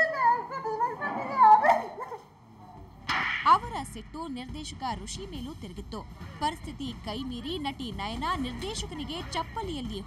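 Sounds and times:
woman crying: 0.0 - 2.2.

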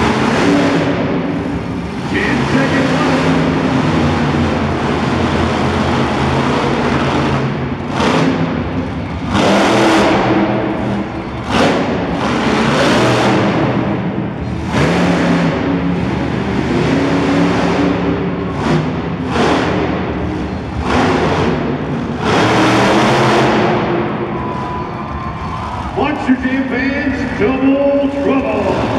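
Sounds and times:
monster truck engine revving: 0.0 - 28.9.

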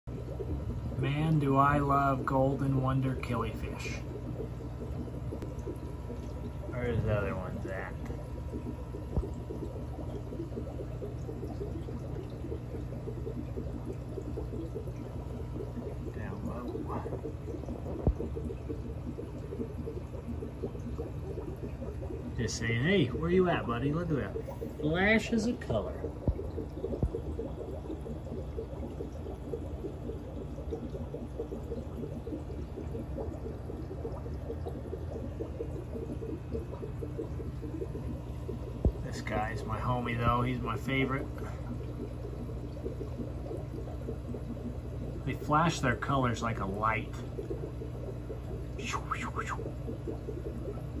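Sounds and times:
aquarium water trickling and bubbling: 0.0 - 51.0
faint steady hum: 0.0 - 51.0.

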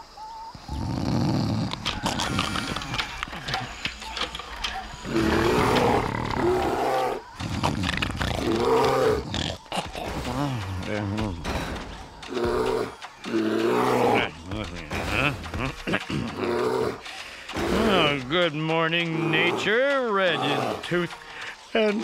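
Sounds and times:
cartoon bear roaring and growling: 5.0 - 11.6, 12.2 - 18.3, 19.1 - 21.0.

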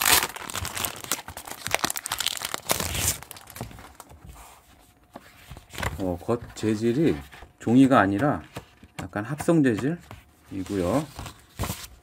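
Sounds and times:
plastic wrapping crinkling: 0.0 - 4.1.

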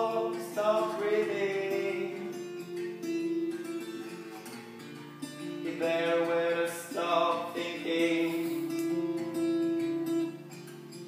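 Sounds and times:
person singing: 0.0 - 3.5, 5.6 - 10.4
acoustic guitar strumming: 0.0 - 11.0.

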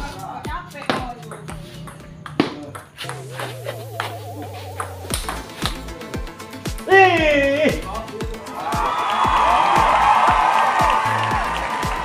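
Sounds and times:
background music: 0.0 - 12.0
table tennis ball clicking: 4.8 - 5.8.

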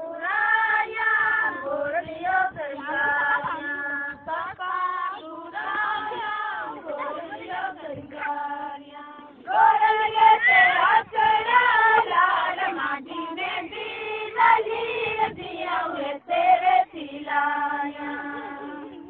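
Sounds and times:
women singing folk song together: 0.0 - 19.0.

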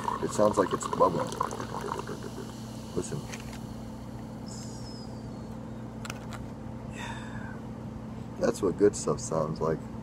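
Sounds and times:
soda fizzing: 0.0 - 2.7.

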